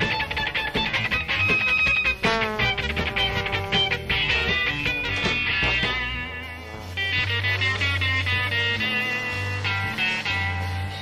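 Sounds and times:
electric guitar: 0:00.0 - 0:11.0
jazz-rock band playing: 0:00.0 - 0:11.0.

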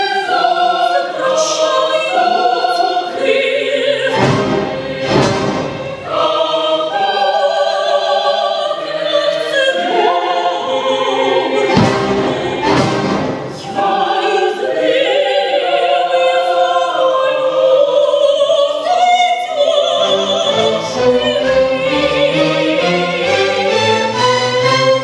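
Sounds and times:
woman singing opera with vibrato: 0:00.0 - 0:04.3, 0:06.0 - 0:12.8, 0:13.6 - 0:23.2
symphony orchestra: 0:00.0 - 0:25.0.

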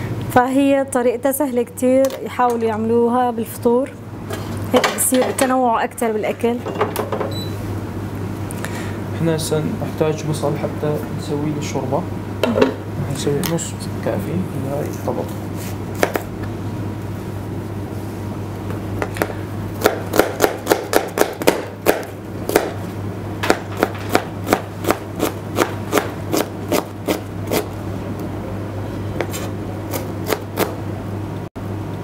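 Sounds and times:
steady low hum: 0:00.0 - 0:32.0
knife chopping on plastic board: 0:16.0 - 0:16.3, 0:19.0 - 0:22.8, 0:23.4 - 0:27.7, 0:29.2 - 0:30.8.

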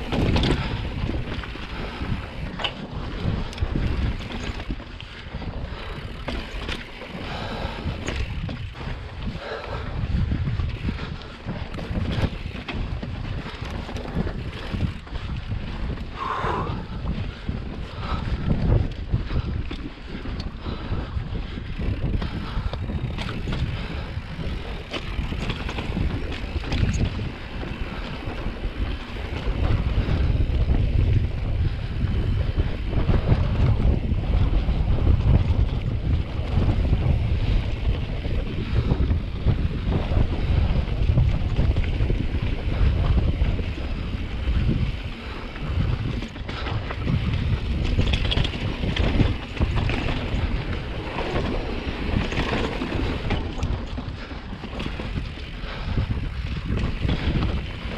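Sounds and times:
bike clicks and rattles: 0:00.0 - 0:57.9
wind rushing over microphone: 0:00.0 - 0:57.9.

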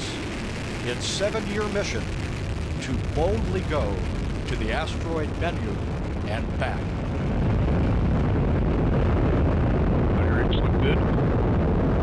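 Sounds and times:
rocket engine deep rumble: 0:00.0 - 0:12.0.

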